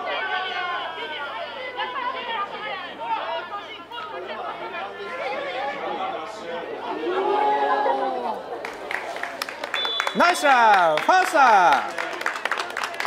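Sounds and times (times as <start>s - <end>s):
players shouting and calling: 0.0s - 12.0s
loud long-held shout: 6.8s - 8.6s.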